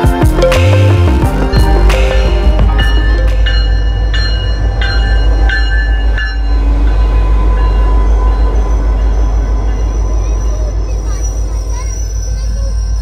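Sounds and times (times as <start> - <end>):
diesel locomotive rumbling: 0.0 - 13.0
locomotive bell ringing: 0.0 - 13.0.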